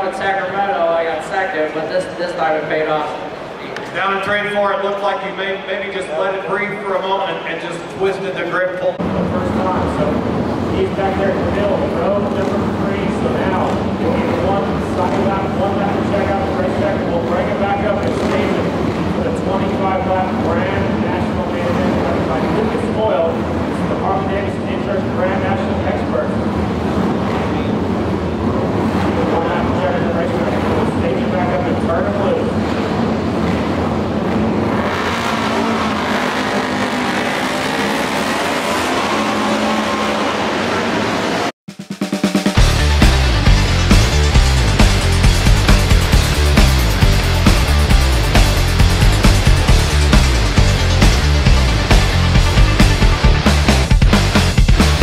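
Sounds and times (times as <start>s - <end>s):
motorcycle engines revving: 8.9s - 41.6s, 42.6s - 55.0s
rock music: 41.4s - 55.0s.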